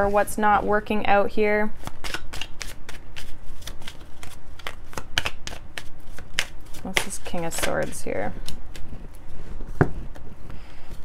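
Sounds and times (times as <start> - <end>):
cards being shuffled: 1.8 - 10.3.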